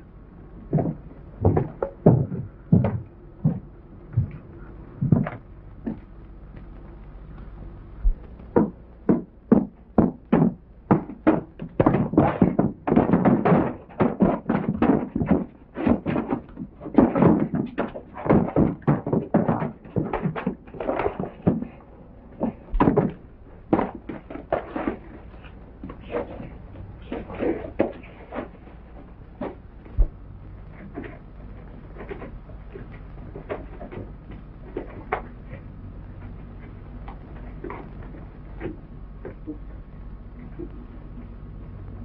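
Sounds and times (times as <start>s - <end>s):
scuffling: 0.6s - 42.0s.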